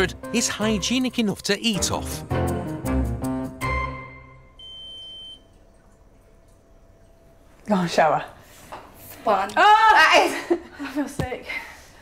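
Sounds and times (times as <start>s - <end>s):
swab meter high beep: 4.6s - 5.5s.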